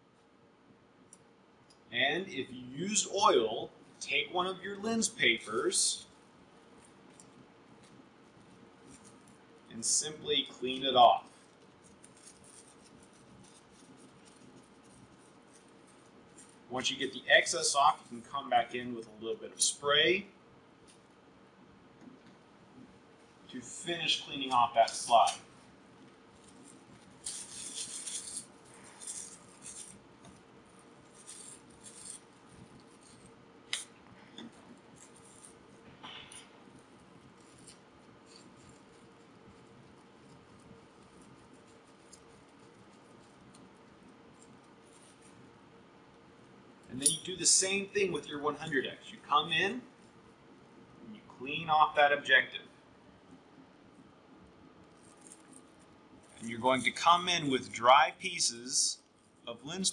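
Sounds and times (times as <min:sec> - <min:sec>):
lens paper rubbing on glass: 0:02.4 - 0:19.9, 0:22.8 - 0:45.7.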